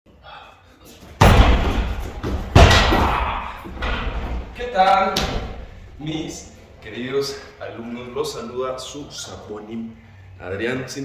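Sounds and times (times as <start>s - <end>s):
kicks smacking heavy bag: 1.2s - 4.4s.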